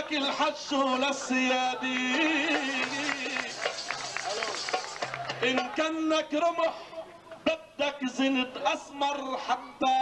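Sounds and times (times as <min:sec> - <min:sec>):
man singing: 0:00.0 - 0:03.8, 0:05.3 - 0:06.8
people clapping: 0:00.0 - 0:06.2.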